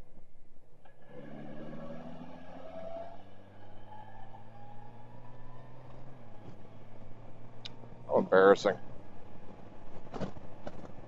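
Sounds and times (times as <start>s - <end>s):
road and wind noise: 0.0s - 11.0s
motorcycle engine cruising: 0.9s - 11.0s.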